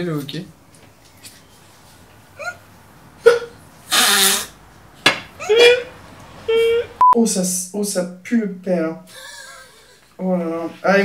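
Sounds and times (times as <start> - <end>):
men laughing: 9.1 - 10.1.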